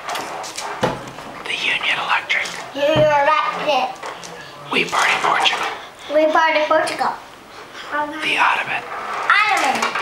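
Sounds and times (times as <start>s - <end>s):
children whispering: 1.4s - 9.8s
child speaking: 2.7s - 4.0s, 6.1s - 7.3s, 7.9s - 8.6s, 9.2s - 10.0s.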